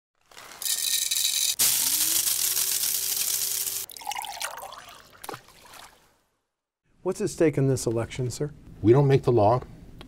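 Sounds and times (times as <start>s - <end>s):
coffee pouring into a cup: 1.6s - 5.9s
liquid splashing: 1.8s - 6.2s.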